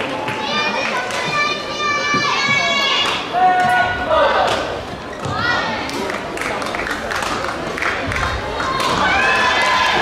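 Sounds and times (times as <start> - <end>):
children shouting and calling: 0.4 - 3.8.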